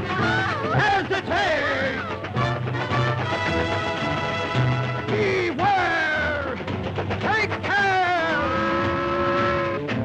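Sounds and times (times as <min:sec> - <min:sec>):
orchestral score: 0:00.0 - 0:10.0.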